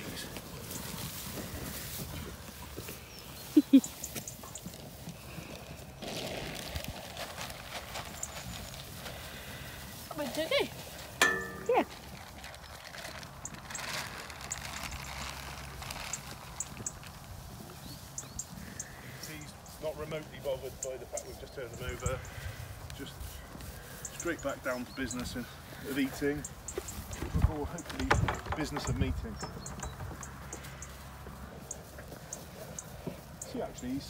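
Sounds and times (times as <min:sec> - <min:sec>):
wind buffeting microphone: 0:26.4 - 0:30.6.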